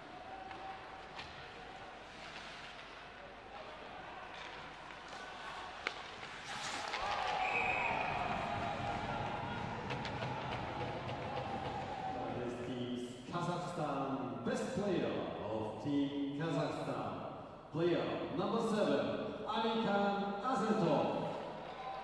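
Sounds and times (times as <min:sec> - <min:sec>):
crowd shouting and cheering: 0:00.0 - 0:02.0, 0:03.4 - 0:12.8, 0:21.3 - 0:22.0
arena noise: 0:00.0 - 0:13.2.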